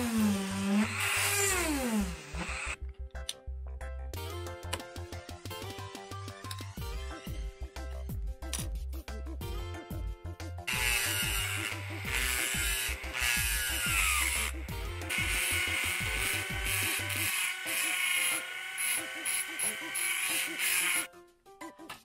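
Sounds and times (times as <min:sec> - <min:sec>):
rotary tool grinding metal: 0:00.0 - 0:02.8, 0:10.7 - 0:21.1
background music with beat: 0:03.2 - 0:16.8.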